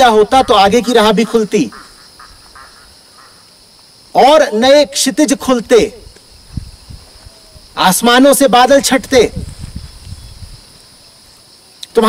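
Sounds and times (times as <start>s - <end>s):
faint short calls: 0.0s - 3.7s.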